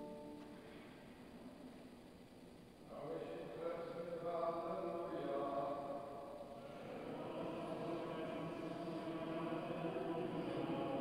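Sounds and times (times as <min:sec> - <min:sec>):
sustained church music: 0:00.0 - 0:01.0, 0:03.2 - 0:11.0.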